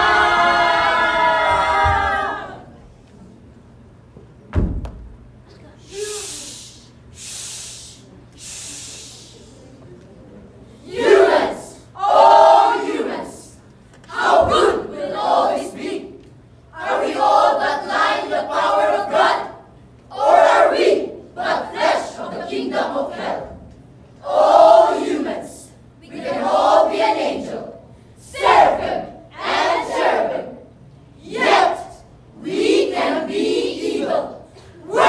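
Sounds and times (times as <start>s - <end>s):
crowd shouting in unison: 0.0s - 2.8s.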